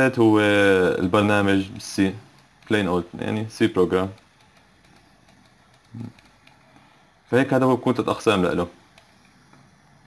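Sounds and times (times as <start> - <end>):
man speaking: 0.0 - 4.2, 5.9 - 6.2, 7.3 - 8.8.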